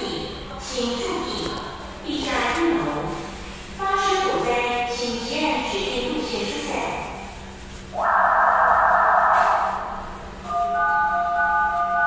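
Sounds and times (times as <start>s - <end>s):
loudspeaker voice announcement: 8.0s - 12.0s.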